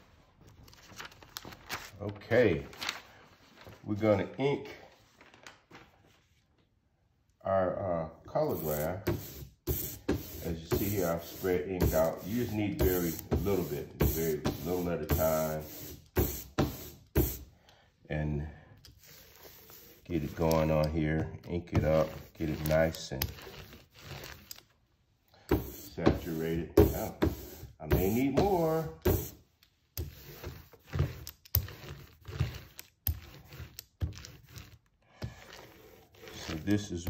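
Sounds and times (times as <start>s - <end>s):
ink roller strokes on glass: 21.9s - 24.5s, 30.0s - 37.0s.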